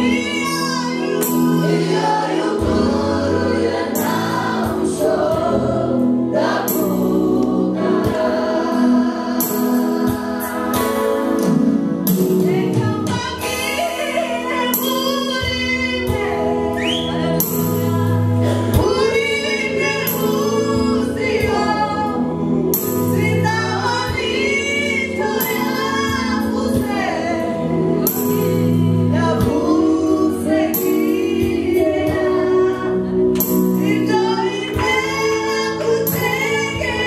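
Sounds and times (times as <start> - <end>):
woman singing into a microphone: 0.0 - 5.7, 12.3 - 37.0
group of voices singing: 0.0 - 37.0
low keyboard chords: 0.0 - 37.0.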